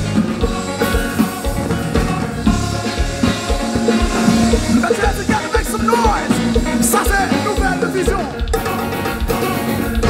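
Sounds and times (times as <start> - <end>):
drums: 0.0 - 10.0
electric guitar: 0.0 - 10.0
live band playing: 0.0 - 10.0.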